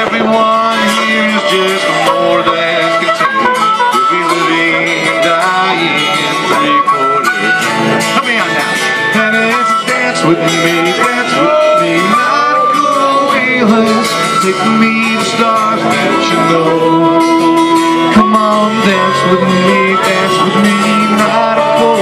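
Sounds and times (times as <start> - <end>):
acoustic guitar strumming: 0.0 - 22.0
harmonica solo: 0.6 - 14.7, 15.6 - 22.0.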